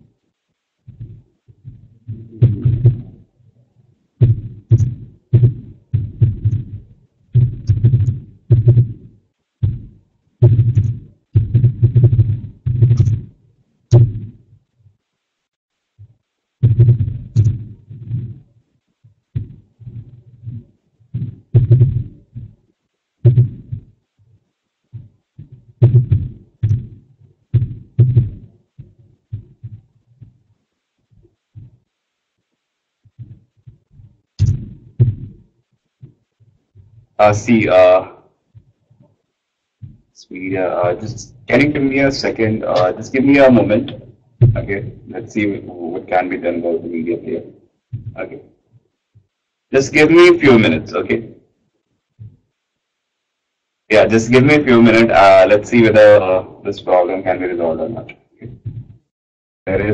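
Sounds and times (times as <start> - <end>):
keyboard typing: 4.2 - 9.8, 10.4 - 13.3, 16.6 - 18.4, 34.4 - 35.4.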